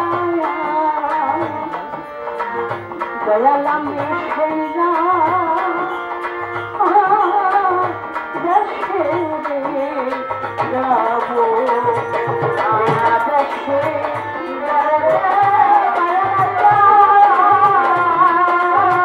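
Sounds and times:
steady drum beat: 10.4 - 19.0.

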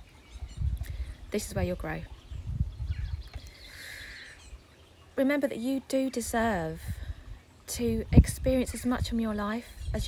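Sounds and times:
breeze rumbling on microphone: 0.0 - 4.7, 6.3 - 10.0.

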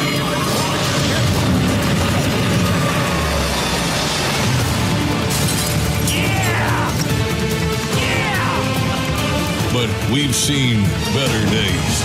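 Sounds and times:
rumble of action sound effects: 0.0 - 7.8.

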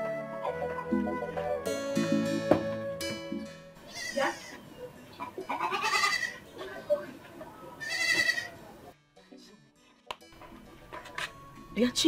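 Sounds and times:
goat bleating: 3.9 - 4.6, 5.2 - 6.5, 7.8 - 8.6.

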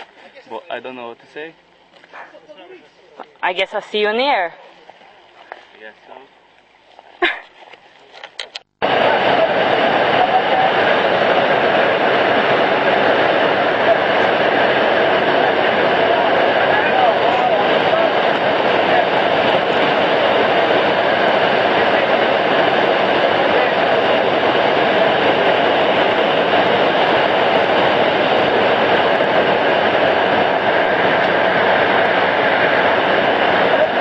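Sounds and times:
plane engine and propeller drone: 4.6 - 34.0.

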